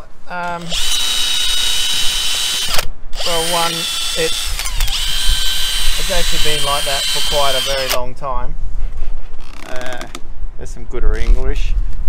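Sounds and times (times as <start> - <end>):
electric drill whining: 0.6 - 8.0.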